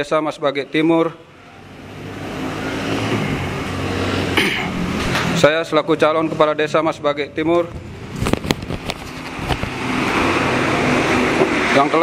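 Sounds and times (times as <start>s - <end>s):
vehicle engine running: 6.0s - 12.0s.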